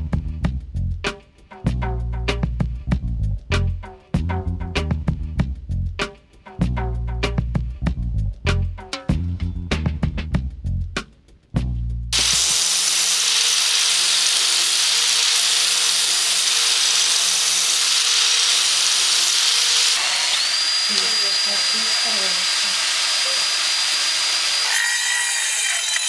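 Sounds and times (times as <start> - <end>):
power tool grinding metal: 12.2 - 26.0.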